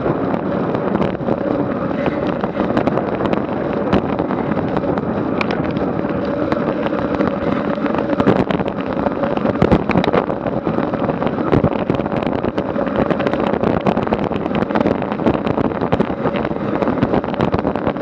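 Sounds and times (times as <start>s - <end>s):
bike tyres on asphalt: 0.0s - 18.0s
wind rushing on microphone: 0.0s - 18.0s.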